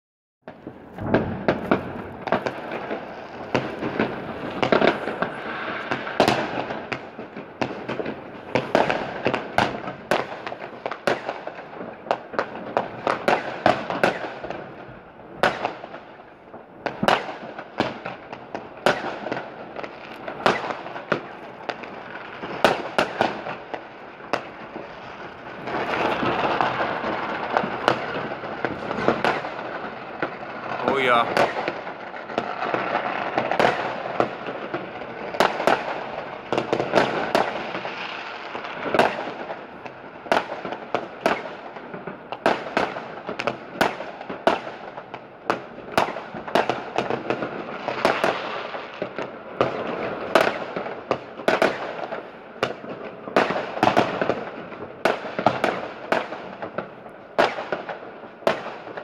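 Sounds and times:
firework rockets bursting: 0.5 - 59.0
fireworks crackling: 0.5 - 59.0.

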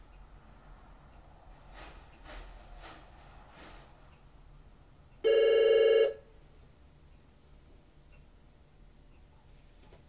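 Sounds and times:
telephone ringing with warble: 5.2 - 6.2.

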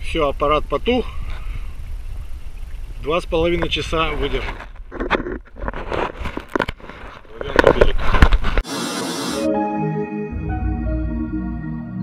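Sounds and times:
water noise: 0.0 - 7.2
wind: 0.0 - 8.7.

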